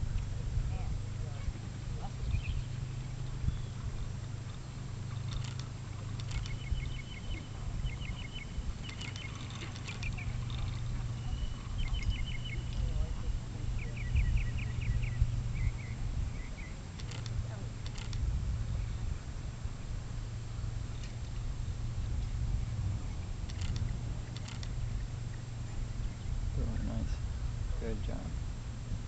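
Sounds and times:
low steady hum: 0.0 - 29.0
small bird chirping trills: 2.0 - 18.1.

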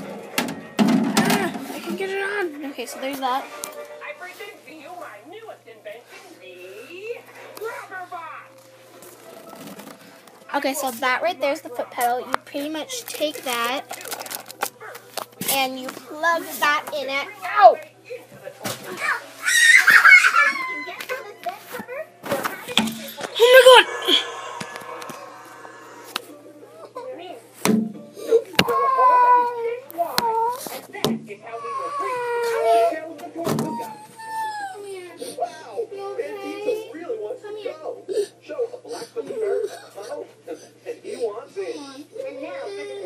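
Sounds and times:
faint voices: 1.0 - 43.0.

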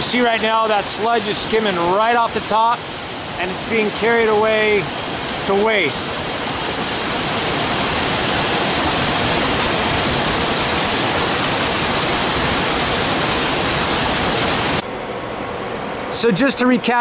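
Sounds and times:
rushing water: 0.0 - 14.8.

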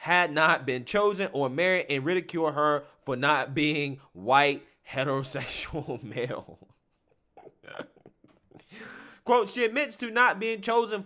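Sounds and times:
man chuckling quietly: 6.4 - 9.0
man breathing: 8.5 - 9.3.

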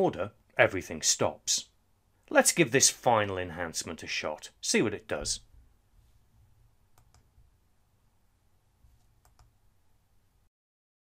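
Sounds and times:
faint computer mouse clicks: 7.0 - 7.3, 9.2 - 9.5.

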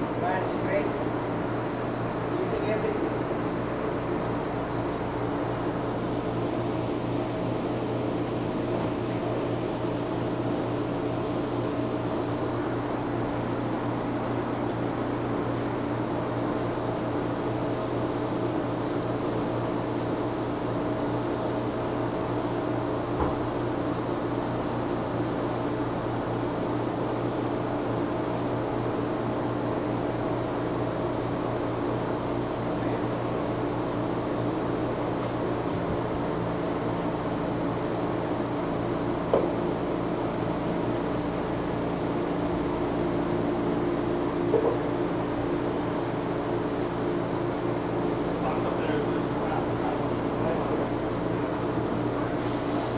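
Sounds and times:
steady mechanical hum: 0.0 - 52.9.

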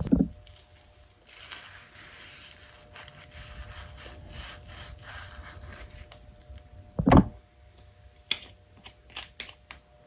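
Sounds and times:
wipe rubbing on skin: 1.2 - 6.2.

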